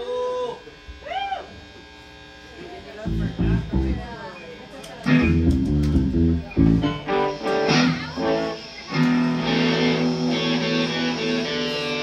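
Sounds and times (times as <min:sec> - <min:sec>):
guitar amplifier hum and buzz: 0:00.0 - 0:12.0.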